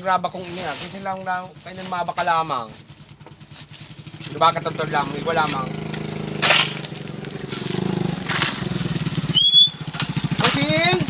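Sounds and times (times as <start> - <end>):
motorcycle engine idling: 0.0 - 11.0
spade scraping gravelly soil: 0.0 - 11.0
high chirp: 6.5 - 7.4, 8.0 - 10.0.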